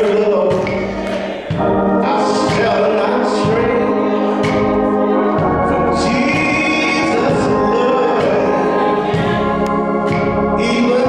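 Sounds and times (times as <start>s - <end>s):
church choir singing: 0.0s - 11.0s
organ: 0.0s - 11.0s.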